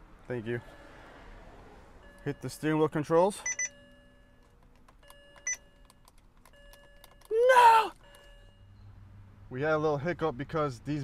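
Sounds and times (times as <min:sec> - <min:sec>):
short loud vocal exclamation: 0:07.3 - 0:08.0.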